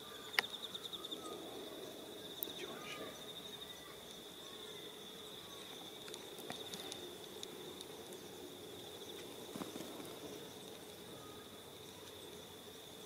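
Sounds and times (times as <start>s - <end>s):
high-pitched insect trill: 0.0s - 13.0s.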